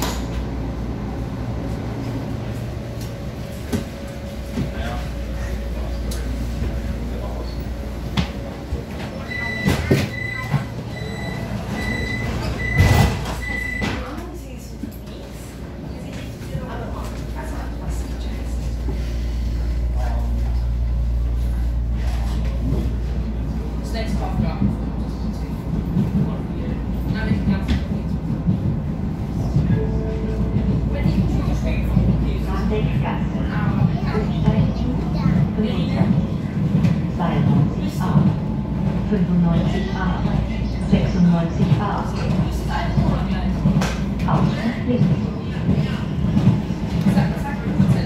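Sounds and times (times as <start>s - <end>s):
train wheels rumbling on track: 0.0s - 48.0s
high electronic door-warning beep: 9.3s - 14.0s.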